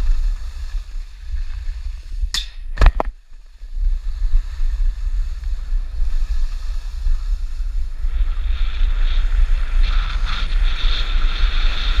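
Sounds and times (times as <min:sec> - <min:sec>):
skis hissing on snow: 0:00.0 - 0:02.3, 0:03.4 - 0:12.0
wind buffeting microphone: 0:00.0 - 0:12.0.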